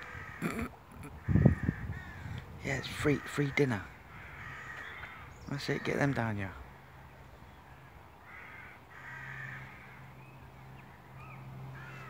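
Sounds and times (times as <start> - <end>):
birds calling: 0.0 - 12.0.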